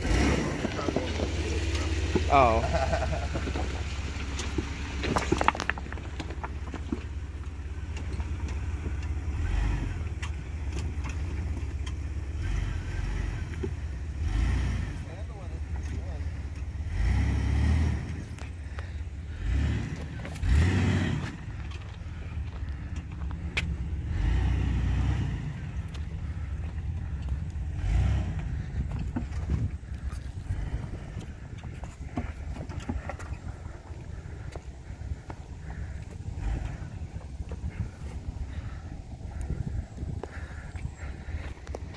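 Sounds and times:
car engine running: 0.0 - 41.9
wind rumble on microphone: 25.5 - 41.9.

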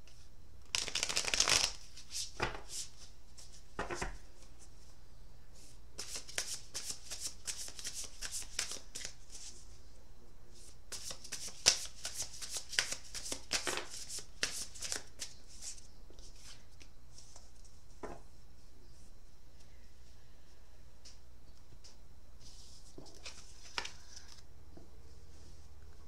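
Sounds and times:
cards being shuffled by hand: 0.1 - 3.6, 6.0 - 9.6, 10.6 - 17.8, 22.4 - 24.5.

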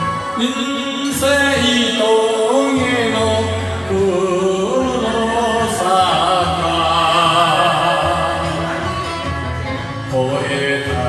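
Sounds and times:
karaoke backing track: 0.0 - 11.0
man singing into a microphone: 0.0 - 11.0.

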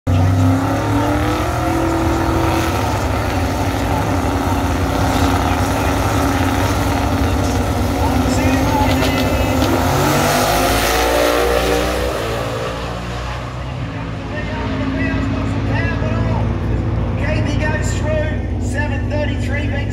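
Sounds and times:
cars accelerating away: 0.1 - 19.9
drag car engines revving: 0.1 - 19.9.

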